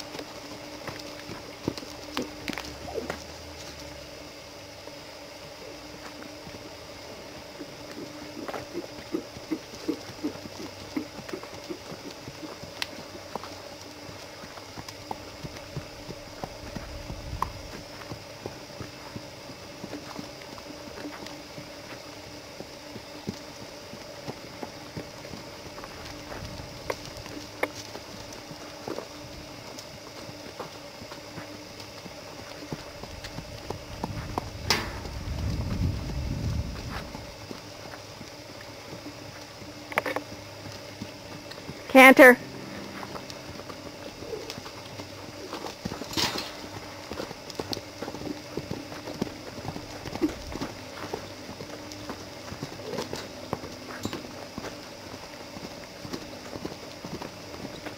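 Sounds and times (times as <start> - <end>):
horse hoofbeats on soft dirt: 0.0 - 57.9.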